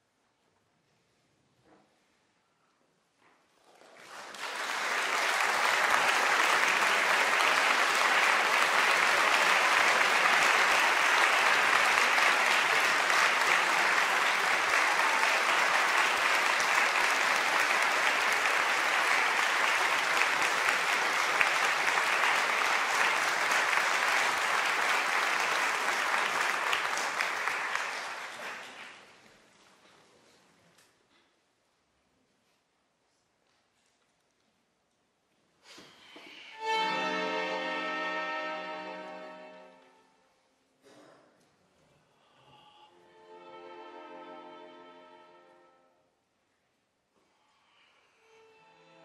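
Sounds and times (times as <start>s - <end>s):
audience applauding: 3.6s - 29.4s.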